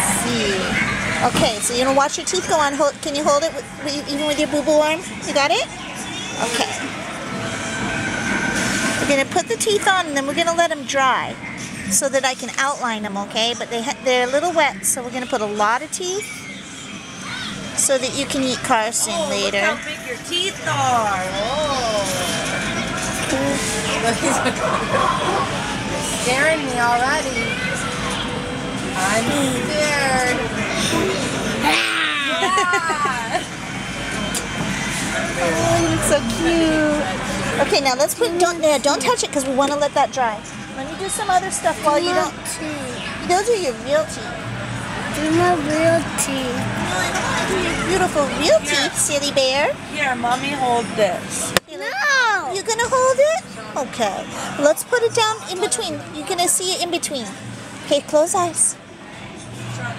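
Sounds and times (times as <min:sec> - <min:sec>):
rushing mechanical noise: 0:00.0 - 0:42.6
indistinct voices: 0:00.0 - 0:59.9.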